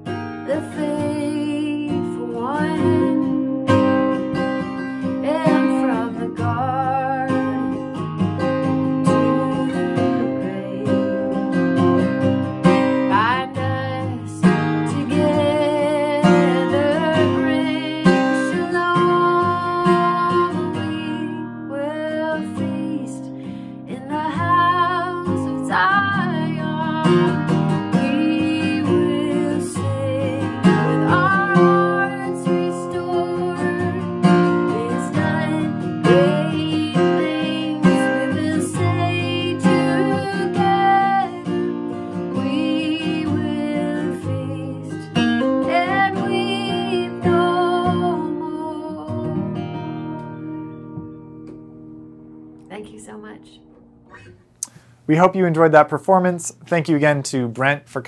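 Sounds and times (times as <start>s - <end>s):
woman singing: 0.0s - 50.6s
acoustic guitar strumming: 0.0s - 57.8s.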